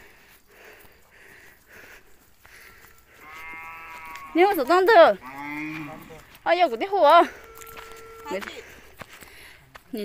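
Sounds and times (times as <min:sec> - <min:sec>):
cow mooing: 0:03.2 - 0:06.2, 0:07.2 - 0:08.4.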